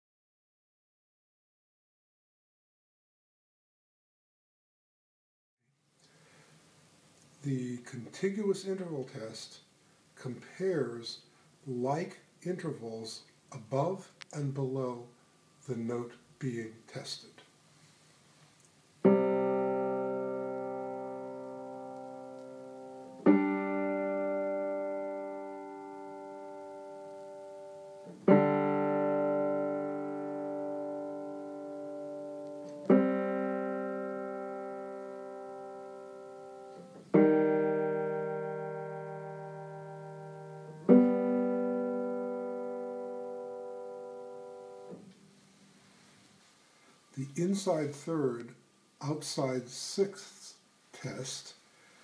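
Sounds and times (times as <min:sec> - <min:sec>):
piano two-note intervals: 0:19.0 - 0:45.1.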